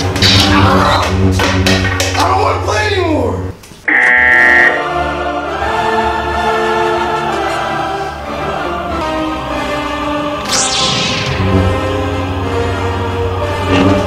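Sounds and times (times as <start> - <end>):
bright buzzer-like tone: 3.8 - 5.0
choir held chords: 3.9 - 14.0
sharp musical hits: 10.5 - 12.2.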